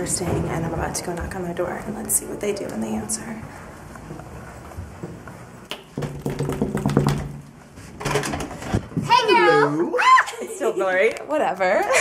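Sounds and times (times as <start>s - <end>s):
knuckles knocking on a door: 6.0s - 7.3s.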